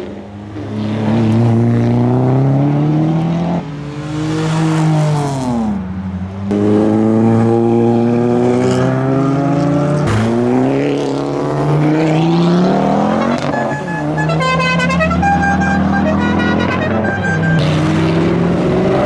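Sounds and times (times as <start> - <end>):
car engines accelerating: 0.0 - 19.0.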